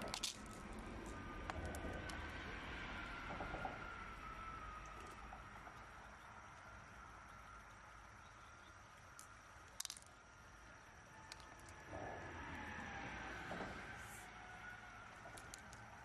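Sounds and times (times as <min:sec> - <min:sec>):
pearls clicking in a shell: 0:00.0 - 0:02.2, 0:08.9 - 0:10.4, 0:11.2 - 0:11.9, 0:15.1 - 0:16.0.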